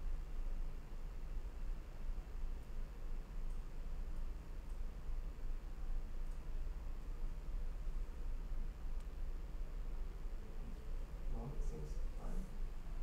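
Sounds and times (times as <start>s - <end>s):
faint ticks: 3.4s - 4.9s, 6.1s - 6.5s
faint hiss: 5.7s - 13.0s.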